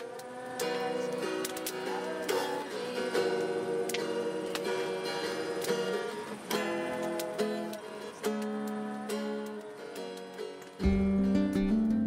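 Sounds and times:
slow acoustic guitar: 0.0s - 12.0s.

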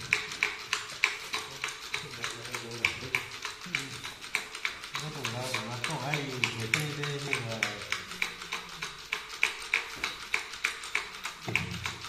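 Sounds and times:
wooden chair knocking on table: 11.5s - 12.0s.

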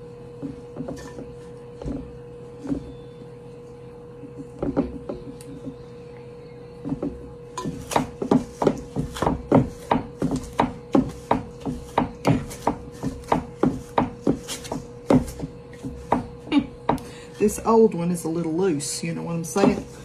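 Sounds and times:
pastry blender striking bowl: 6.9s - 17.1s.

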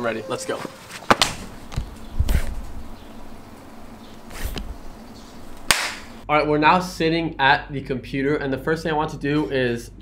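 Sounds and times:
hand clap: 5.7s - 6.1s.

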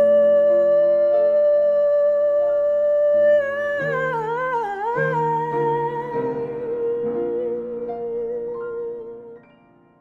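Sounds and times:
woman singing wordlessly: 0.0s - 9.5s.

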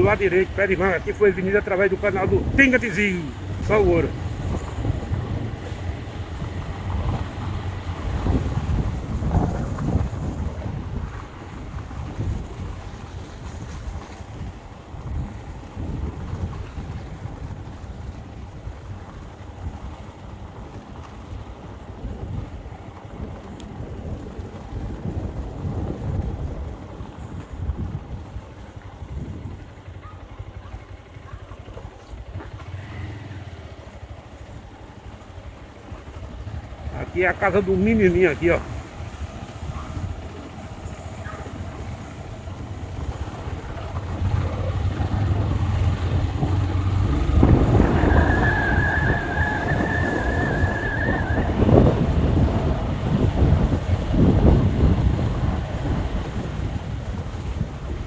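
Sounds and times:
wind buffeting microphone: 0.0s - 32.9s, 34.8s - 58.0s
road noise rumble: 0.0s - 58.0s.

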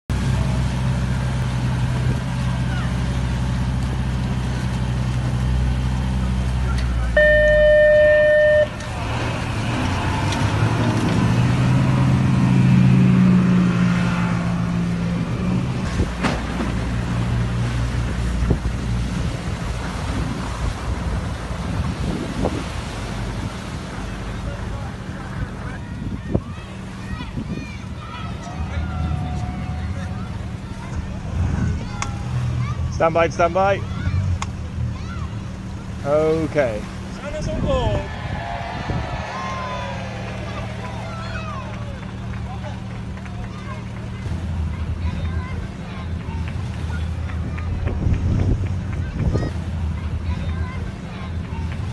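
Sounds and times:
outboard engines revving: 0.1s - 51.9s
loud horn tone: 7.1s - 8.9s.

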